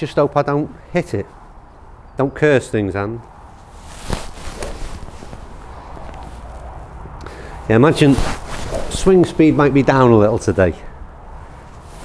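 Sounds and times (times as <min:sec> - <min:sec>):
faint foot and clothing movement: 0:03.1 - 0:12.0.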